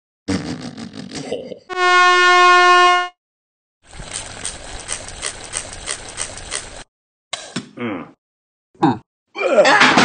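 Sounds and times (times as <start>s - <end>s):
cartoon air horn blast: 1.7s - 3.2s
water pistol squirting: 3.9s - 6.9s.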